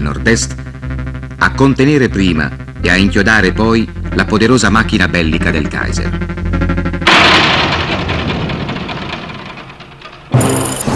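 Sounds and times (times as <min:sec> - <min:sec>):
artillery blast: 0:07.0 - 0:09.5.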